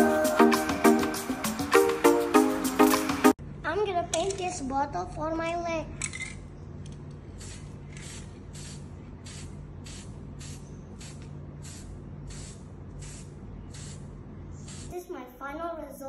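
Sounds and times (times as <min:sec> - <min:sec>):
spray can hissing bursts: 0:07.3 - 0:14.9.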